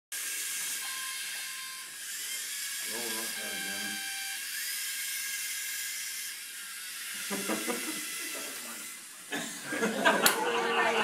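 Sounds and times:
electric motors whirring: 0.1s - 11.0s.

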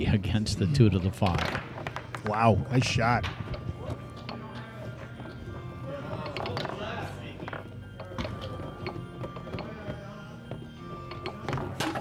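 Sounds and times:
background music: 0.0s - 12.0s
foosball ball clacking: 1.2s - 2.4s, 7.4s - 10.0s, 10.6s - 12.0s
faint chatter: 3.5s - 12.0s.

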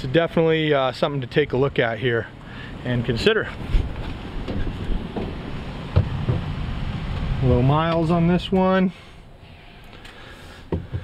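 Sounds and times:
wind rumble: 2.4s - 8.6s
microphone handling noise: 3.5s - 7.3s.

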